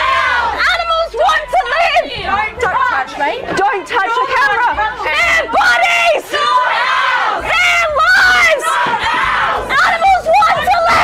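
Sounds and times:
protesters shouting slogans: 0.0s - 11.0s.

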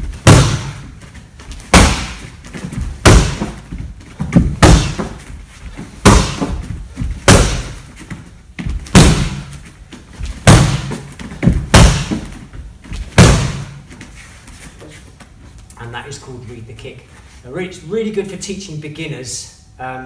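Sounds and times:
kicks smacking a kick shield: 0.0s - 5.3s, 5.9s - 7.8s, 8.6s - 9.6s, 10.3s - 12.4s, 13.0s - 13.8s.

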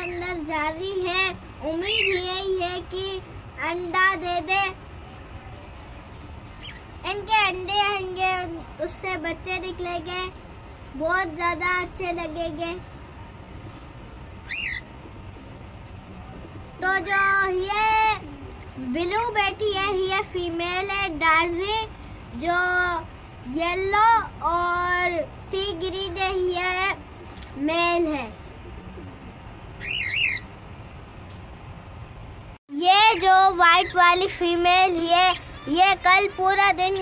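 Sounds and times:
low background noise: 0.0s - 37.0s.

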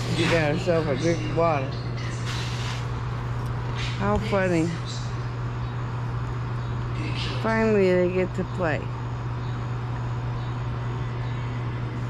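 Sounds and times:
low motor hum: 0.0s - 12.0s.

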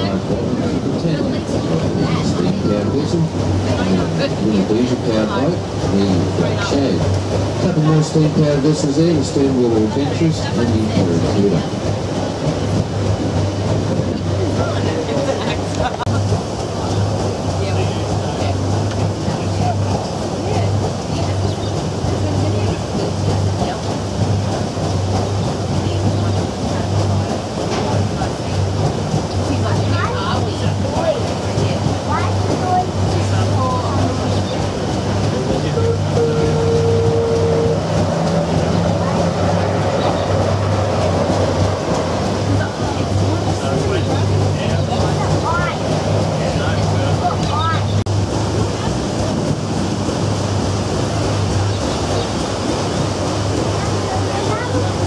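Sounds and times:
steam engine rhythmic beat: 0.0s - 55.0s
water churning: 0.0s - 55.0s.

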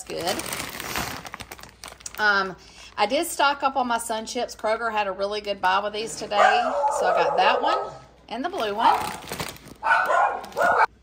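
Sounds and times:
chip bag crinkling: 0.0s - 2.5s, 8.5s - 10.9s
dog barking: 6.4s - 8.1s, 9.8s - 11.0s.

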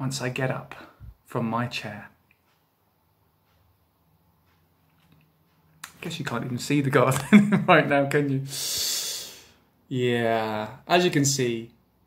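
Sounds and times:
man speaking: 0.0s - 2.2s, 5.8s - 9.3s, 9.9s - 11.8s.

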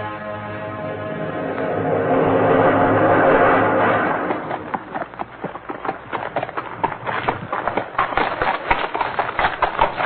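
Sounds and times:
horse hoofbeat clops: 4.2s - 10.0s.

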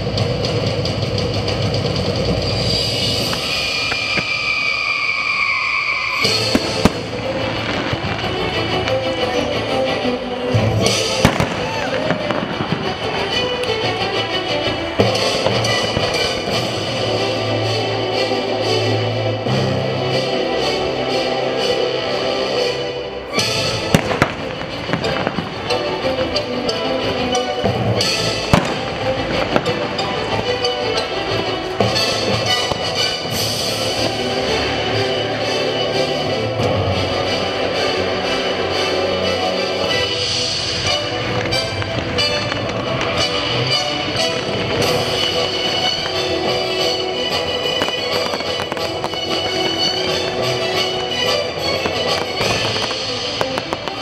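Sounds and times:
fireworks bursting: 0.0s - 18.7s, 23.2s - 54.0s
music playing: 0.0s - 54.0s
sharp firework bangs: 6.2s - 8.4s, 10.8s - 13.3s, 23.7s - 26.3s, 28.0s - 30.4s, 47.6s - 50.5s, 51.6s - 54.0s.

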